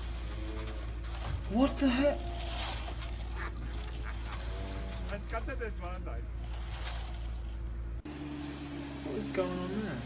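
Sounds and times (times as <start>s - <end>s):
truck engine humming: 0.0s - 10.0s
truck engine rumbling: 0.0s - 10.0s.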